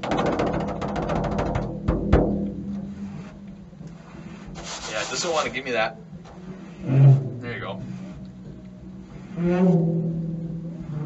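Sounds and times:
finger roll on frame drum: 0:00.0 - 0:08.2
deep ringing bass drum strokes: 0:00.0 - 0:11.0
hand rubbing drum skin: 0:00.0 - 0:11.0.

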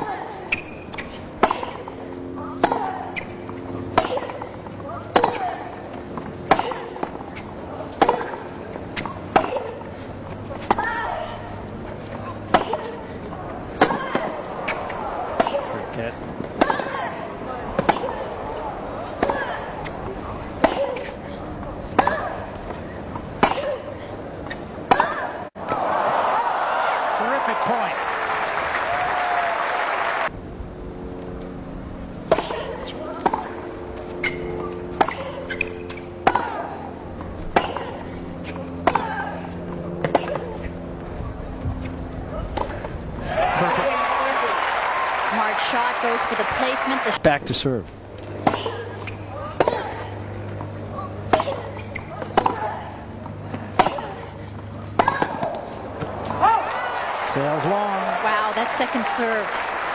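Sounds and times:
tennis ball hit with racket: 0:00.0 - 0:23.9, 0:24.5 - 0:25.8, 0:32.3 - 0:33.6, 0:34.2 - 0:40.6, 0:48.2 - 0:56.8
crowd applauding: 0:25.8 - 0:30.3, 0:43.2 - 0:47.2, 0:56.4 - 0:59.9.

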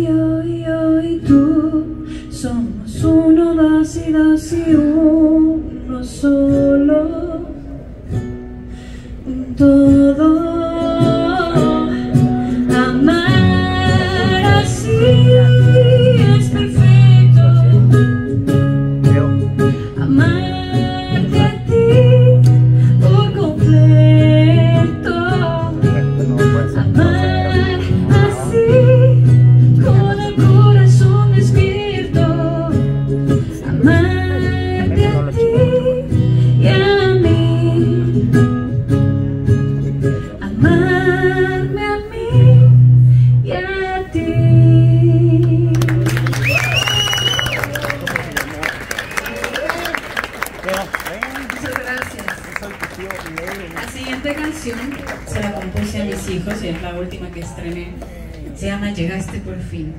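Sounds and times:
acoustic guitar: 0:00.0 - 0:59.9
ukulele: 0:09.4 - 0:43.5
person singing: 0:20.0 - 0:29.2.

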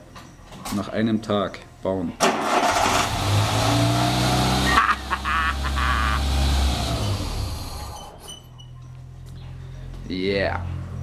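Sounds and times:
car engine revving and idling: 0:02.4 - 0:08.0.

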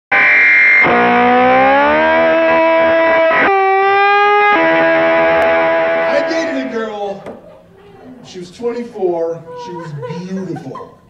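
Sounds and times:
distorted electric guitar chords: 0:00.1 - 0:07.7.

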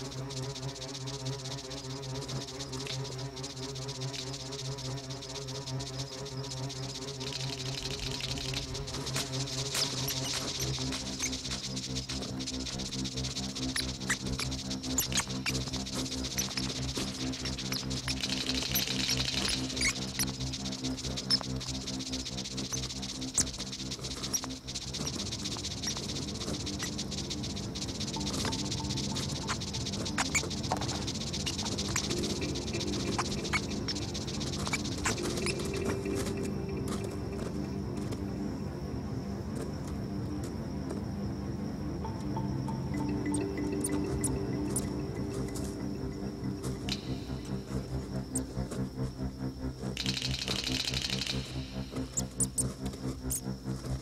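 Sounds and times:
high shimmering music layer: 0:00.0 - 0:54.0
sustained low music tones: 0:00.0 - 0:54.0.

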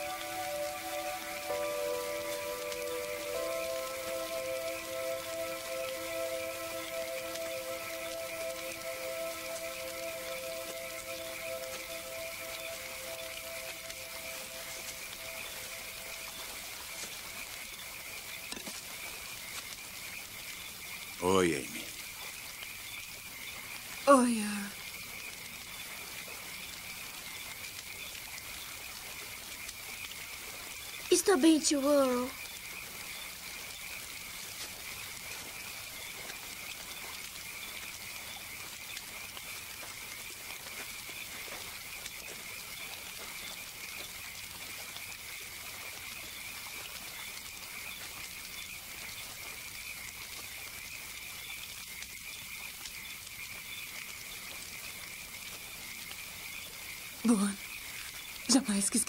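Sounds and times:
frogs calling: 0:00.0 - 0:59.0.

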